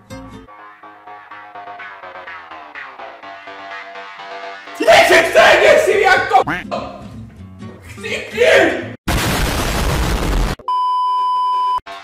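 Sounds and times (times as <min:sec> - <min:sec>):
explosion sound effect: 0:09.1 - 0:10.6.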